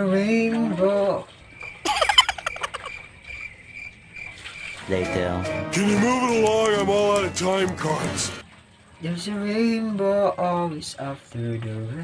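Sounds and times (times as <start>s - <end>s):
insect chirping: 1.3s - 4.8s
music: 4.9s - 8.4s.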